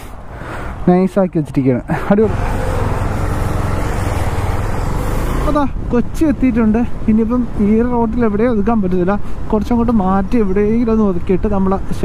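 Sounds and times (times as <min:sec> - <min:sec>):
wind rush on microphone: 0:02.2 - 0:12.0.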